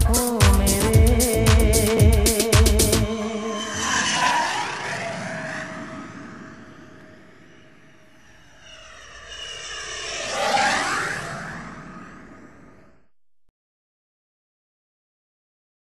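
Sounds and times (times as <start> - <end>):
rushing whoosh passing by: 3.0 - 13.1.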